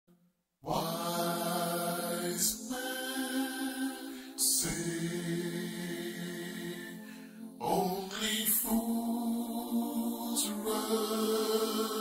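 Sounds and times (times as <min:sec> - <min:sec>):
layered voices holding a chord: 0:00.6 - 0:12.0.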